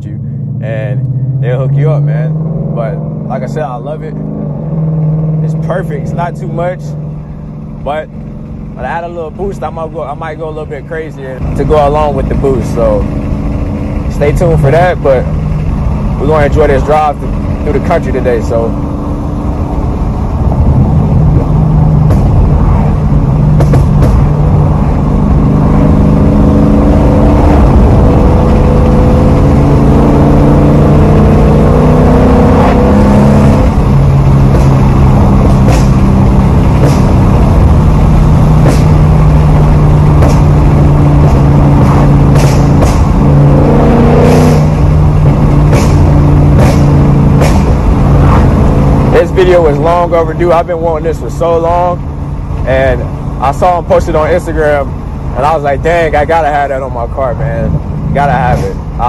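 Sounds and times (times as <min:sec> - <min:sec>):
car engine heard from inside cabin: 0:00.0 - 0:59.0.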